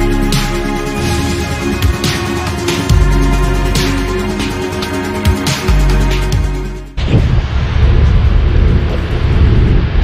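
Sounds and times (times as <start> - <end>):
music: 0.0 - 7.0.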